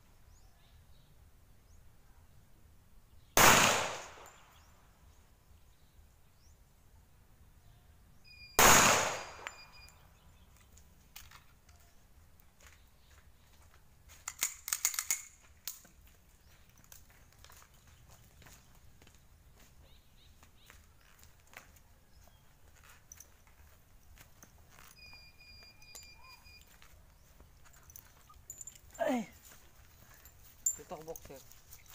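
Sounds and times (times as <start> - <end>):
pistol shot with echo: 3.4 - 4.5, 8.6 - 9.8
fainter cracks and clicks: 14.2 - 15.9
person speaking: 28.8 - 31.8.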